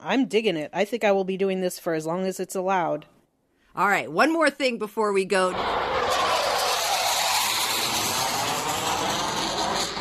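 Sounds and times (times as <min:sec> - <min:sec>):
jet flying over: 0:05.5 - 0:10.0.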